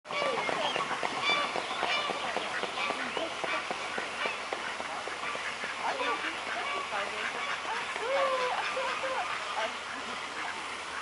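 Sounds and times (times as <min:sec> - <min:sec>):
swan splashing across water: 0:00.1 - 0:11.0
waterfowl honking and quacking: 0:00.1 - 0:11.0.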